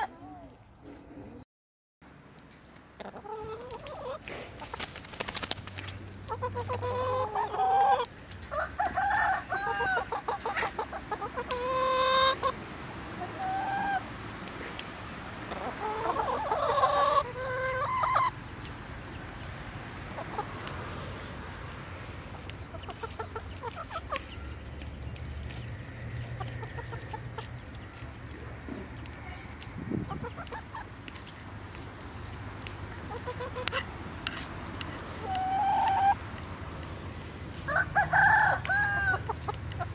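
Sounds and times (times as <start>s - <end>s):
chickens clucking: 0.0s - 1.4s, 3.0s - 39.9s
beaks pecking at grain: 3.0s - 39.9s.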